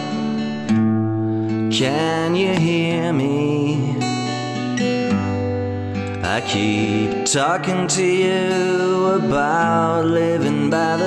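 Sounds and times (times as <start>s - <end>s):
strummed acoustic guitar: 0.0s - 11.0s
man singing: 1.6s - 4.6s, 6.0s - 11.0s.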